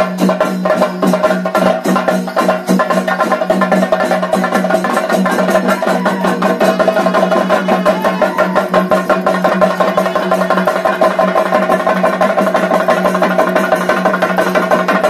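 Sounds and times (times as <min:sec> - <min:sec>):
fast drumming: 0:00.0 - 0:15.0.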